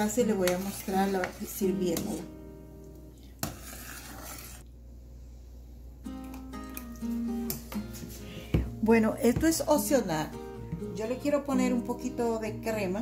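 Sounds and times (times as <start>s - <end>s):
ladle scraping a saucepan: 0.0s - 2.3s, 3.3s - 4.6s
soft instrumental music: 6.0s - 13.0s.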